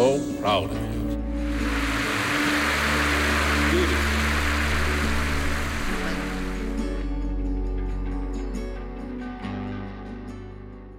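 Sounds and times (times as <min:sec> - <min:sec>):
low background music tones: 0:00.0 - 0:10.9
steady rushing noise: 0:01.4 - 0:06.8.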